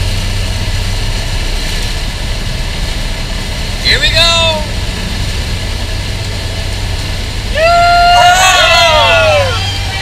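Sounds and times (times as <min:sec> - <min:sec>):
turboprop engine drone: 0:00.0 - 0:10.0.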